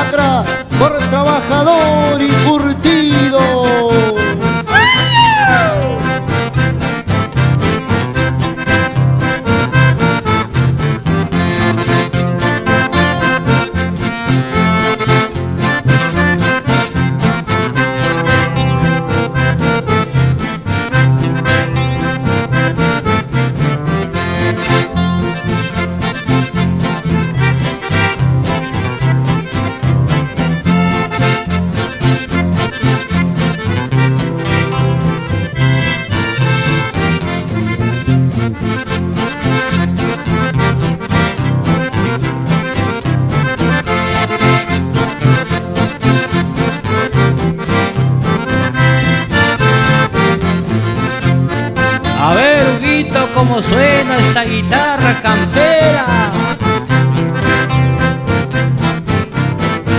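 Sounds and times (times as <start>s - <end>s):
accordion waltz: 0.0s - 59.9s
pulsing bass accompaniment: 0.0s - 59.9s.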